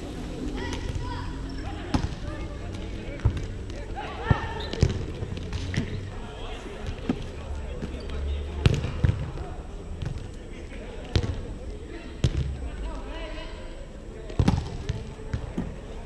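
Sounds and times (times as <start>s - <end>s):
players' voices: 0.0s - 16.0s.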